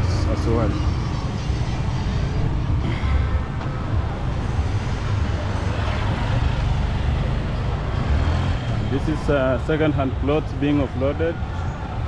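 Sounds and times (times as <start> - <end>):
car passing: 0.0 - 12.0
motorcycles passing: 0.0 - 12.0.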